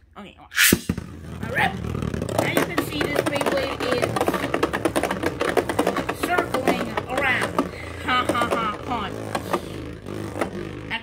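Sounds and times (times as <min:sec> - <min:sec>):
spinning top rattling in plastic stadium: 0:00.6 - 0:11.0.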